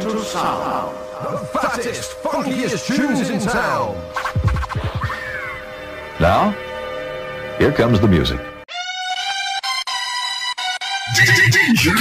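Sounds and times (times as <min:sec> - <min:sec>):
held electronic note: 0:00.0 - 0:11.7
turntable scratching: 0:04.1 - 0:05.3.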